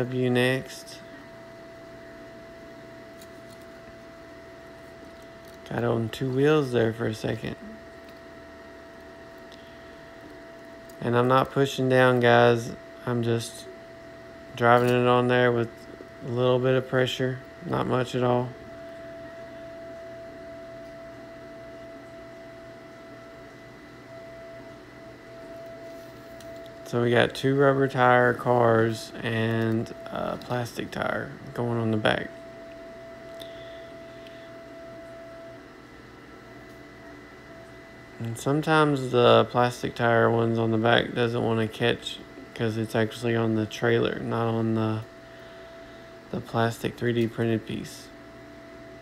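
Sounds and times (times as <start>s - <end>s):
faint thin whine: 0.0s - 49.0s
low room hum: 0.0s - 49.0s.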